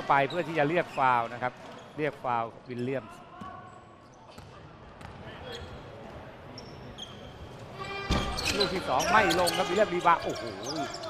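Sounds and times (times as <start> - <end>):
shoe squeaks: 5.4 - 5.9, 6.5 - 11.0.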